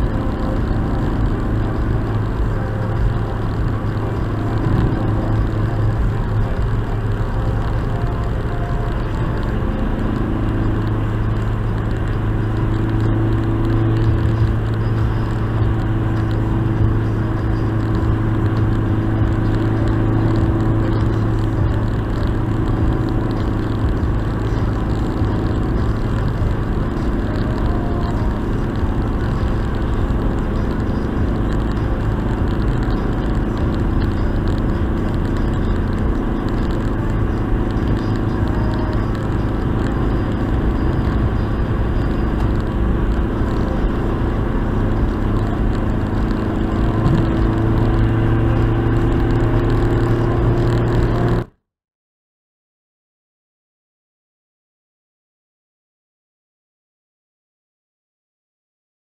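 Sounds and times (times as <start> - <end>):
car engine and tyre drone: 0.0 - 51.6.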